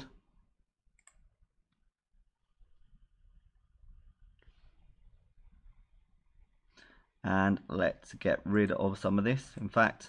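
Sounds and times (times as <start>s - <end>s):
computer mouse click: 1.0s - 1.2s.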